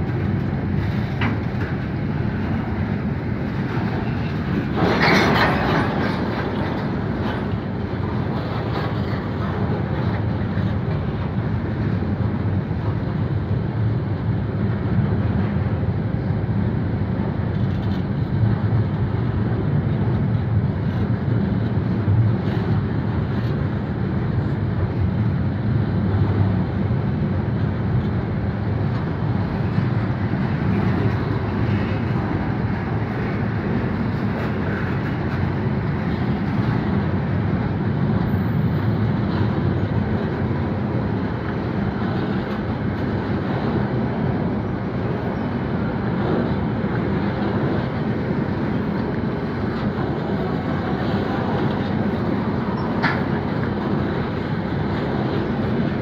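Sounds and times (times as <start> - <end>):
freight train wheels rumbling on rails: 0.0 - 56.0.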